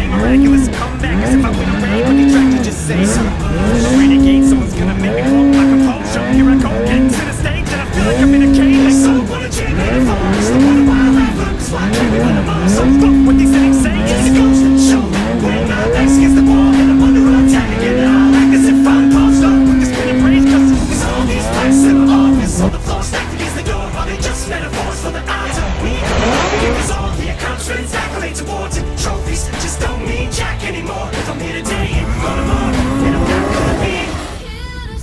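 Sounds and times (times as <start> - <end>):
snowmobile engine revving: 0.0 - 34.7.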